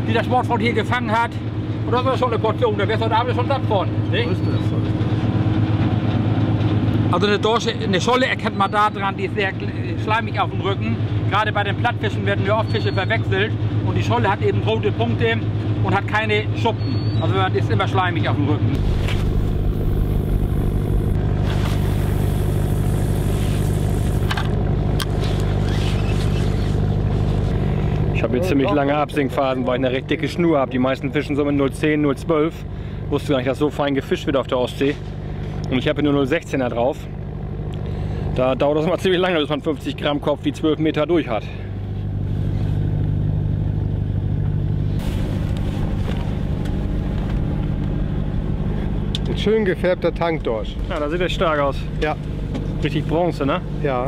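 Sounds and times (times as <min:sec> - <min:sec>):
boat engine droning: 0:00.0 - 0:54.0
rushing noise: 0:18.8 - 0:24.4, 0:45.0 - 0:53.0.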